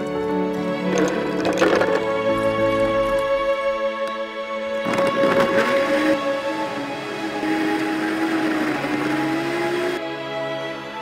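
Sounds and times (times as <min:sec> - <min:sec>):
background music: 0:00.0 - 0:11.0
blender blending ice: 0:04.8 - 0:10.0.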